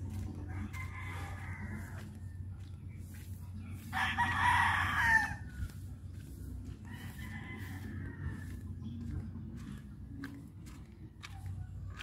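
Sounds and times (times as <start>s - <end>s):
steady low hum: 0.0s - 12.0s
rooster crowing: 0.1s - 2.4s, 3.9s - 5.9s, 6.8s - 8.7s.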